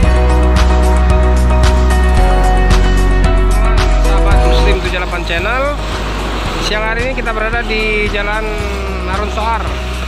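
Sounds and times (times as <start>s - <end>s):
road traffic passing: 0.0s - 10.0s
person speaking: 3.7s - 5.8s.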